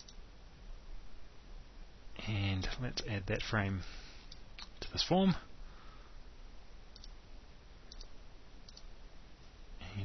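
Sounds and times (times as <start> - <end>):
faint background hiss: 0.0 - 10.0
computer mouse button clicking: 7.0 - 7.2, 7.9 - 8.1.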